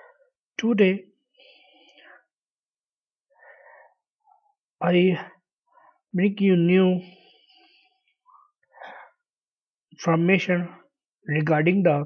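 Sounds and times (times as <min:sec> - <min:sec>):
man breathing: 0:00.0 - 0:00.4, 0:01.2 - 0:02.5, 0:03.2 - 0:04.7, 0:05.6 - 0:06.1, 0:07.0 - 0:09.4.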